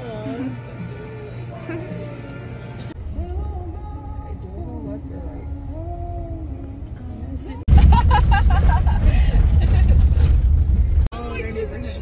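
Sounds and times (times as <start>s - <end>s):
car road noise rumble: 2.8s - 12.0s.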